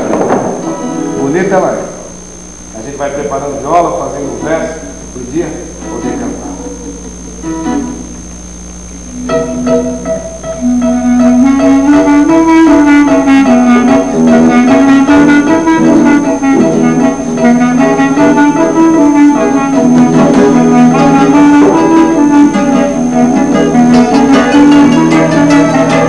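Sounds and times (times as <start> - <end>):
clarinet melody: 4.3 - 8.3, 9.0 - 26.0
plucked guitar accompaniment: 5.8 - 8.2, 9.1 - 26.0.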